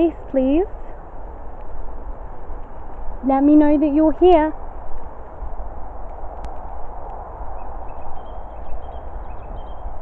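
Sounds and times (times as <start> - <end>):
faint high bird chirps: 7.5 - 10.0.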